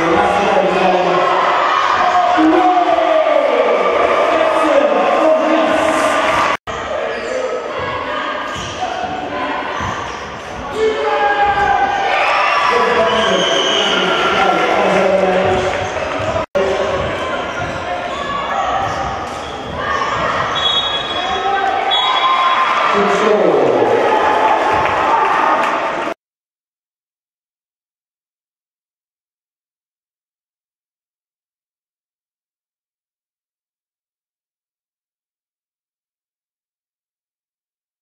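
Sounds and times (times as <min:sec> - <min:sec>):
ball bouncing on wooden court: 0:15.4 - 0:20.6.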